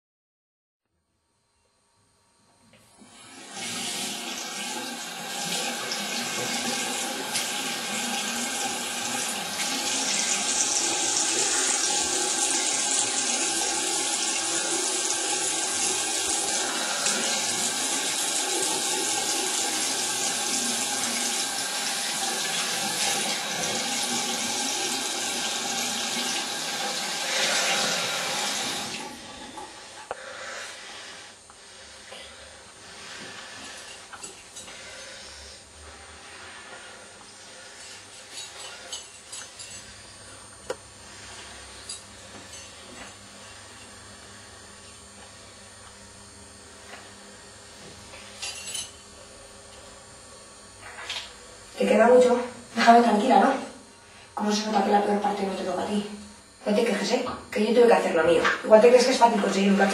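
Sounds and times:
tap water running into sink: 3.4 - 29.7.

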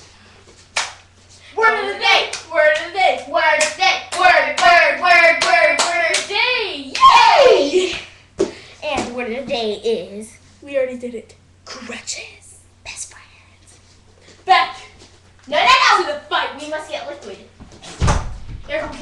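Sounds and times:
hands clapping: 0.7 - 1.0, 5.4 - 6.3
girls chanting a rhyme: 1.5 - 7.7.

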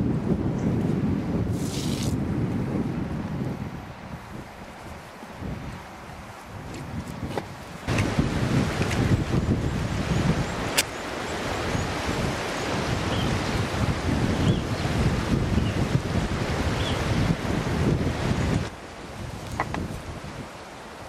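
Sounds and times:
outdoor noise rush: 0.0 - 21.0
wind buffeting microphone: 0.0 - 21.0.

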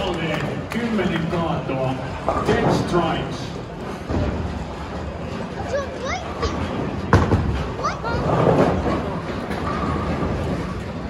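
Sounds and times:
background chatter: 0.0 - 11.0
balls rolling down lanes: 0.0 - 11.0.

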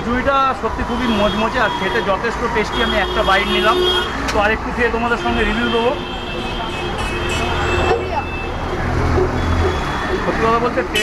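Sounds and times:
street traffic noise: 0.0 - 11.0
vehicle engine humming close by: 7.1 - 11.0.

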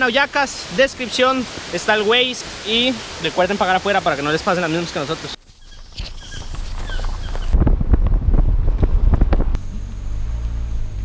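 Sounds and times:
wind buffeting microphone: 5.6 - 9.8
car driving hum from inside: 9.1 - 11.0.

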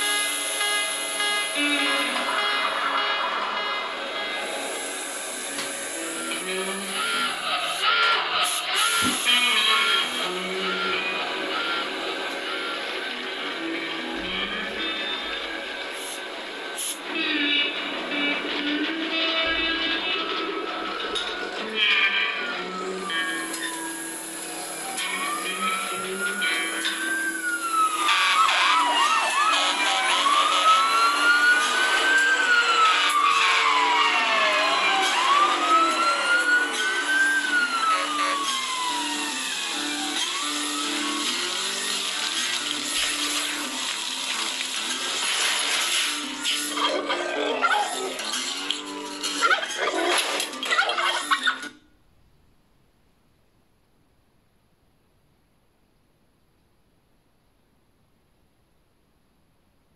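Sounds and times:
fire engine siren wailing: 0.0 - 49.4
background music: 0.0 - 51.7.

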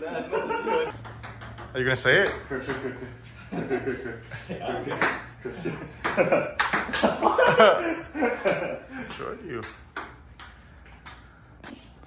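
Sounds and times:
table tennis ball knocks: 0.9 - 3.0.

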